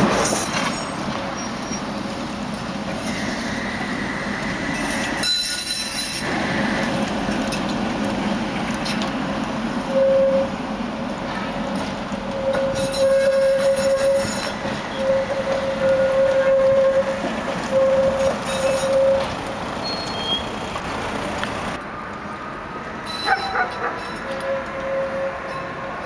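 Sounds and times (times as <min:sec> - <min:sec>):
tram wheels squealing: 0:00.0 - 0:02.2, 0:02.9 - 0:07.8, 0:09.8 - 0:10.6, 0:11.2 - 0:20.8, 0:23.0 - 0:26.0
rumble of moving tram: 0:00.0 - 0:26.0.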